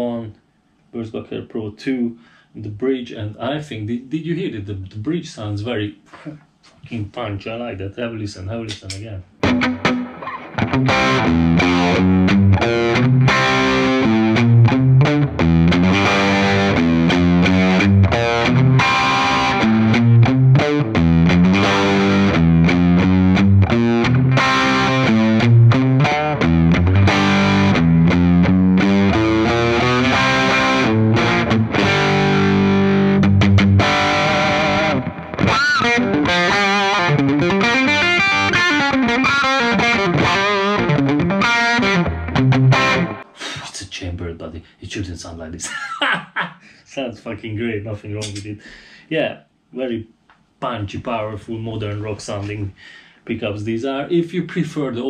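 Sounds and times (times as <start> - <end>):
electric guitar lead lines: 8.8 - 43.4
electric guitar rock chords: 9.4 - 43.4.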